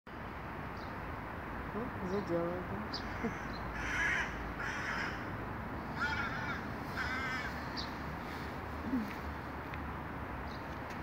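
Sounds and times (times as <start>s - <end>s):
crow cawing: 3.0s - 5.3s, 5.9s - 7.8s.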